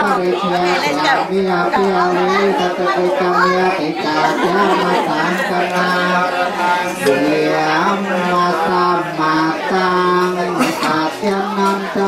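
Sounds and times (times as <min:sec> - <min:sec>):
group chanting in monotone: 0:00.0 - 0:12.0
voices talking or calling: 0:00.0 - 0:12.0.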